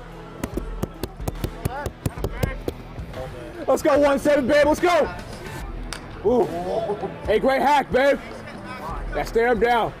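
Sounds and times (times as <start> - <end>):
sharp claps and knocks: 0.4 - 2.9.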